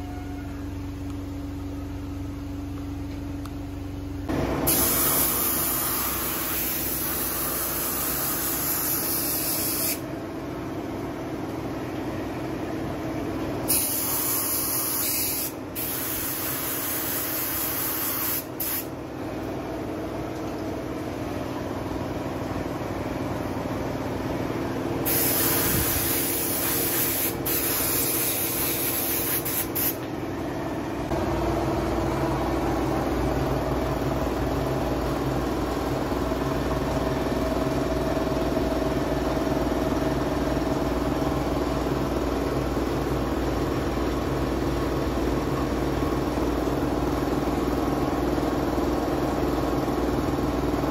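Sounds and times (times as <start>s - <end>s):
loud engine-like hum: 0.0s - 50.9s
steady machine hum: 0.0s - 50.9s
paint spraying in hissing bursts: 4.7s - 10.0s, 13.7s - 18.9s, 25.0s - 30.0s.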